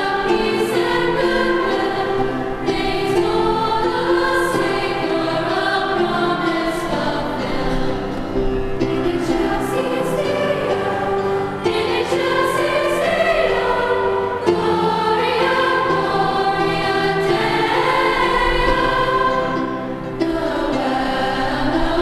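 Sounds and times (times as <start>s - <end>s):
girls' choir singing chords: 0.0s - 22.0s.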